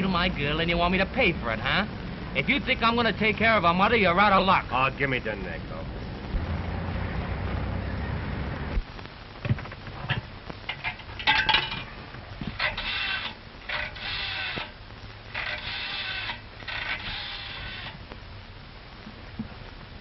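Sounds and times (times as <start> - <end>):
rotary dial whirring: 12.4 - 18.2.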